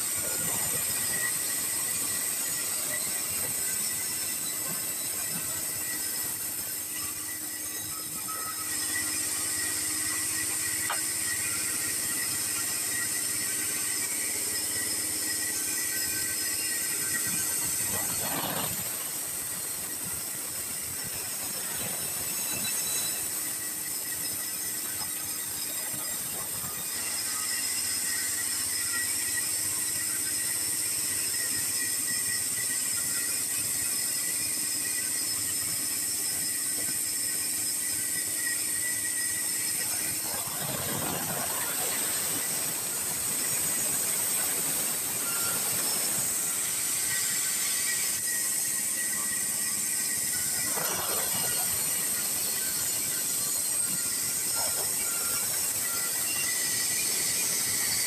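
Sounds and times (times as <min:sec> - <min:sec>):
band saw blade squealing whine: 0:00.0 - 0:58.0.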